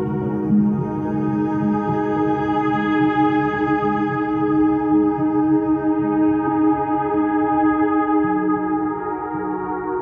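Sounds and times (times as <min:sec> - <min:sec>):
ambient music with sustained tones: 0:00.0 - 0:10.0.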